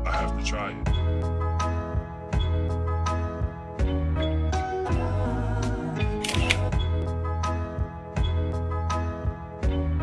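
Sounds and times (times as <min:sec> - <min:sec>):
background music with steady beat: 0:00.0 - 0:10.0
camera shutter clicks: 0:06.2 - 0:06.7.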